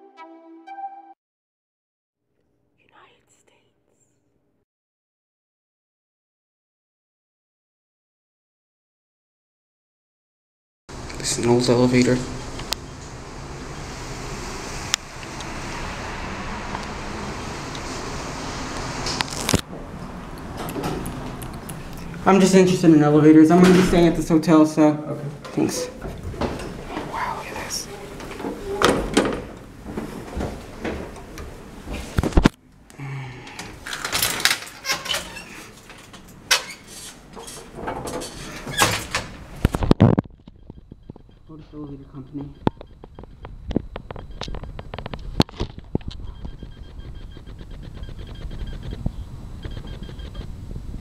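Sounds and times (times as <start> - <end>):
person whispering: 2.8 - 4.0, 27.0 - 28.2
metal gate sliding: 33.9 - 39.4.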